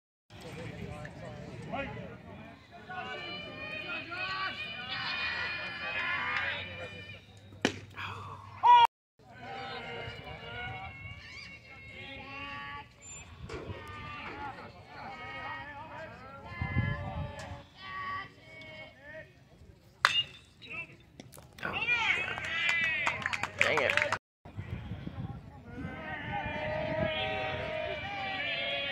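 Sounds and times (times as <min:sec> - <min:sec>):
voices calling out and talking: 0:00.4 - 0:28.9
spectators shouting: 0:02.8 - 0:07.0, 0:25.9 - 0:28.9
bat hitting baseball: 0:07.6 - 0:07.9, 0:20.0 - 0:20.4.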